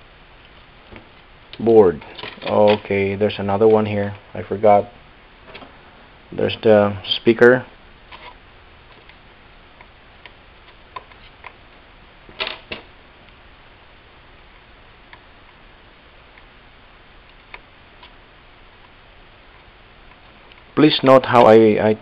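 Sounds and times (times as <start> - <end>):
faint steady hiss: 0.0 - 22.0.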